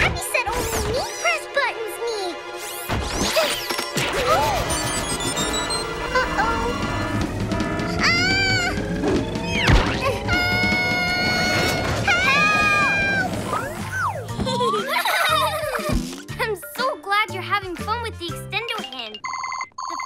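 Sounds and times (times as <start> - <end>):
cartoon score music: 0.0 - 19.2
wordless cries: 5.8 - 13.7
slapstick crash and whack effects: 9.6 - 10.1.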